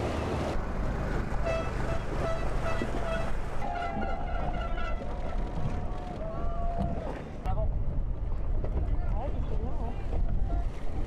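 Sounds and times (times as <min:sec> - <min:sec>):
motorboats rumbling: 0:00.0 - 0:11.0.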